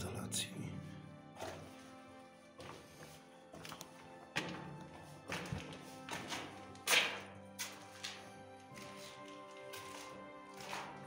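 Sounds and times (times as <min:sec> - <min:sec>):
background music with held tones: 0:00.0 - 0:11.0
footsteps on gritty concrete: 0:01.4 - 0:11.0.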